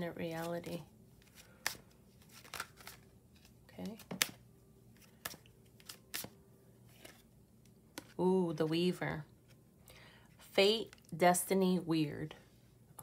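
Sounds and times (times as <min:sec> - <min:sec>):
cards rustling while shuffled: 0:00.2 - 0:07.3, 0:07.9 - 0:08.2.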